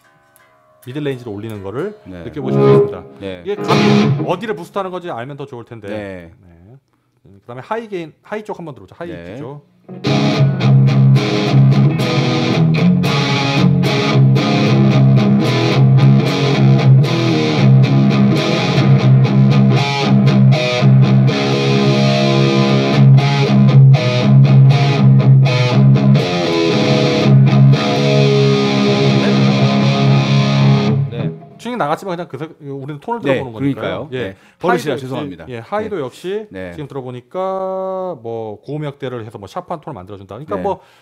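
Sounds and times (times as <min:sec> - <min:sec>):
distorted electric guitar riffing: 0:02.4 - 0:04.5, 0:09.9 - 0:31.6.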